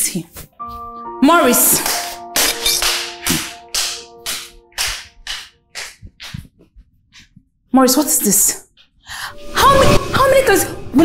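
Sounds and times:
held synth chords: 0.6 - 5.7
swishing percussion hit: 1.8 - 5.2.

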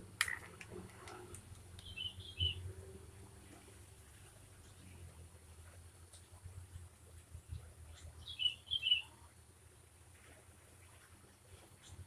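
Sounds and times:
faint low hum: 0.0 - 12.0
small bird chirping: 1.8 - 2.6, 7.9 - 9.1.

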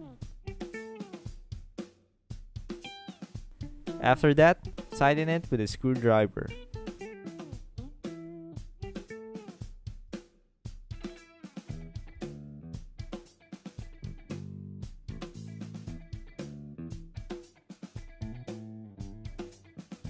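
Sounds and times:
funk music with guitar and drums: 0.0 - 1.4, 2.7 - 9.7, 10.9 - 20.0.

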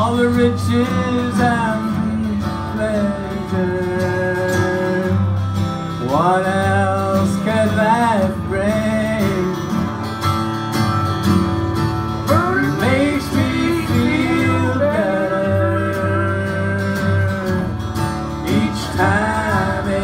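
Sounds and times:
bluegrass string band playing: 0.0 - 20.0
guitar accompaniment: 0.0 - 20.0.

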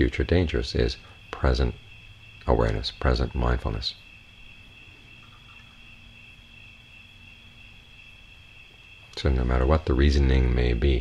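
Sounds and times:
crickets chirping: 0.0 - 11.0
faint low hum: 0.0 - 11.0.

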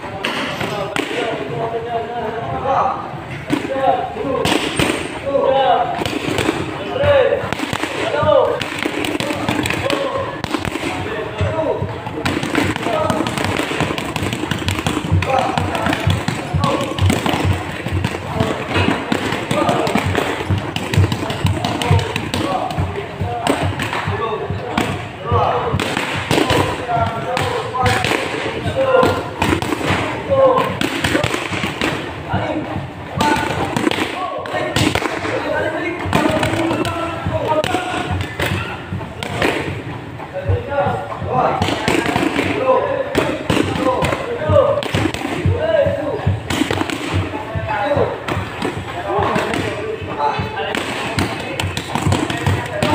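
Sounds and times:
people talking: 0.0 - 52.9
boxing gloves smacking mitts: 7.4 - 11.1, 12.1 - 25.0, 41.5 - 52.9.

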